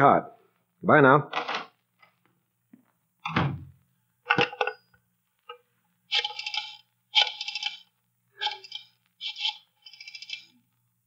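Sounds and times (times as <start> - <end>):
faint recording hum: 0.0 - 11.0
rotary telephone dial clicking: 6.1 - 10.5.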